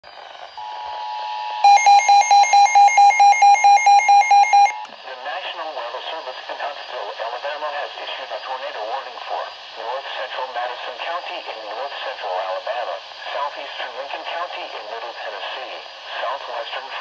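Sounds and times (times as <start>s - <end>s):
rapid beeping: 1.6s - 4.9s.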